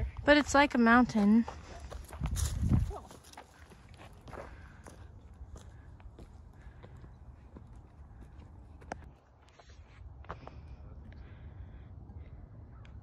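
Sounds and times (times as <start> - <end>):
footsteps on rocky gravel: 0.4 - 10.6.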